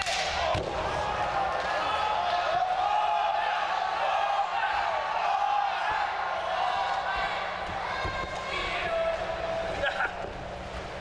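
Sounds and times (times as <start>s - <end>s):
crowd shouting: 0.3s - 10.0s.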